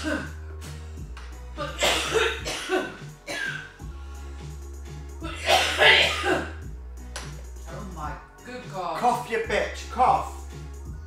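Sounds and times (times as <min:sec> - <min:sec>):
man coughing: 0:00.0 - 0:00.4, 0:01.6 - 0:03.8, 0:05.2 - 0:06.6
background music with low bass: 0:00.0 - 0:11.0.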